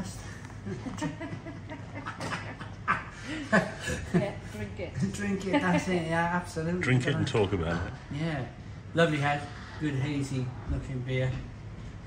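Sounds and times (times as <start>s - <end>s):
man laughing: 0.7s - 4.3s.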